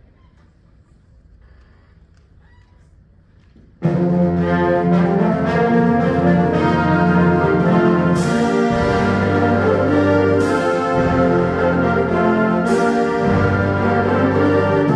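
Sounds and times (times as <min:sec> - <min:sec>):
concert band playing brass chords: 0:03.8 - 0:14.9.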